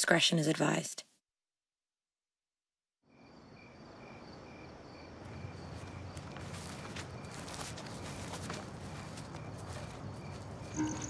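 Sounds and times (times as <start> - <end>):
cricket chirping: 3.1 - 11.0.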